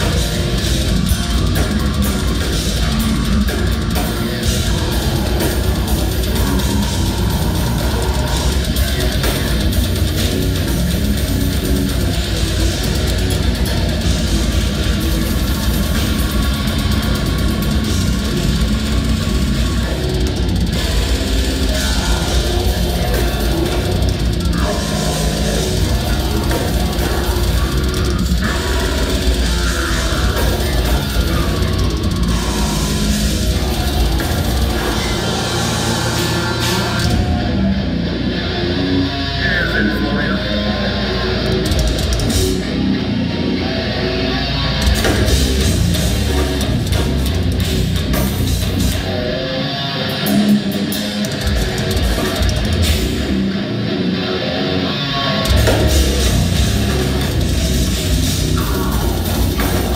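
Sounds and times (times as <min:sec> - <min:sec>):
death metal band playing: 0:00.0 - 0:59.9
vocalist growling: 0:00.0 - 0:59.9.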